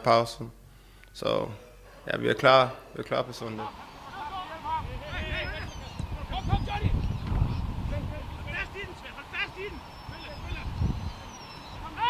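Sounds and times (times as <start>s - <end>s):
players shouting: 3.4s - 12.0s.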